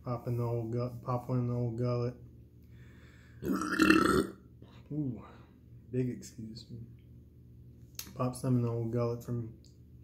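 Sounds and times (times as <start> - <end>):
man burping: 3.4 - 4.4.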